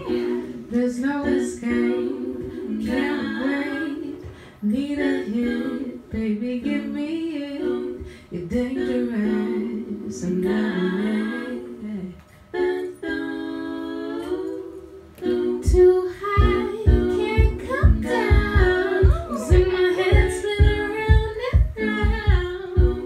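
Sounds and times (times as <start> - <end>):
low thumping beat: 0.0 - 7.0, 15.6 - 23.0
woman singing in harmony: 0.0 - 23.0.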